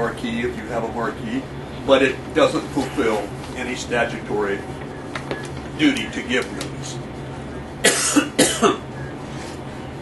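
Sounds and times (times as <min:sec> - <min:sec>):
low room hum: 0:00.0 - 0:10.0
person coughing: 0:07.8 - 0:08.9.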